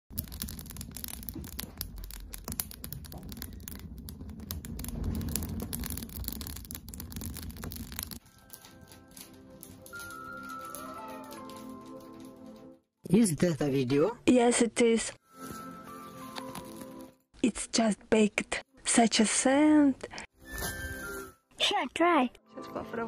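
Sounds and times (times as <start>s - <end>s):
low rumble: 0.1s - 8.3s
wood fire crackling in stove: 0.1s - 12.8s.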